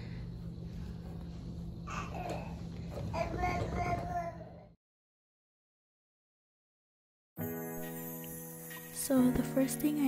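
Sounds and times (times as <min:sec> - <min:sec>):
steady low hum: 0:00.0 - 0:03.2
baby babbling: 0:01.9 - 0:02.6, 0:03.2 - 0:04.7.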